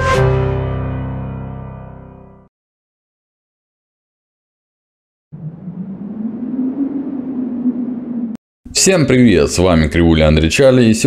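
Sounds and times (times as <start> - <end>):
low droning tone: 5.4 - 8.4.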